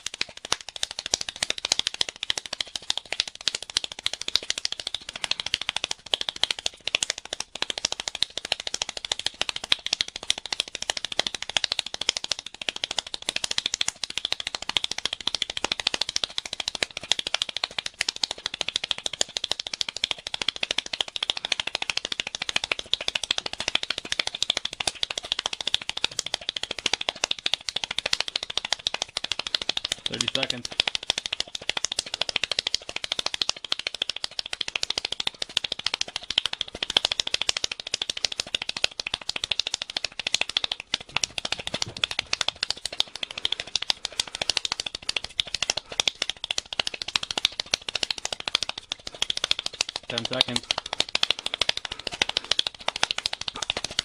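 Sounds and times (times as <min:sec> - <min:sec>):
rapid hand clapping: 0:00.0 - 0:54.0.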